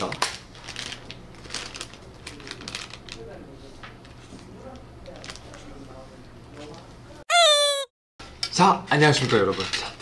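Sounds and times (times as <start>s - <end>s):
plastic candy packets crinkling: 0.0s - 3.4s.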